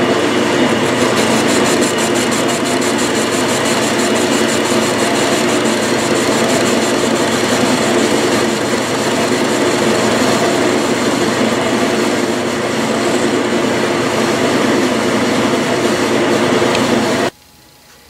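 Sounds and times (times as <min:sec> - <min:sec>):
metal lathe drone: 0:00.0 - 0:17.3.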